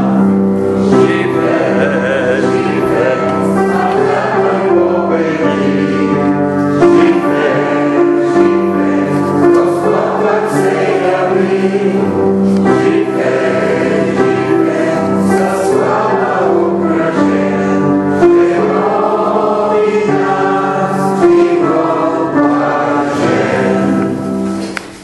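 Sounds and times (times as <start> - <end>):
choir singing sacred music: 0.0 - 25.0.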